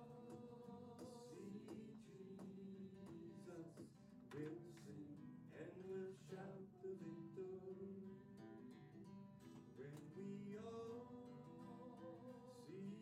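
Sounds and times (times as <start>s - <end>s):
acoustic guitar strumming hymn: 0.0s - 13.0s.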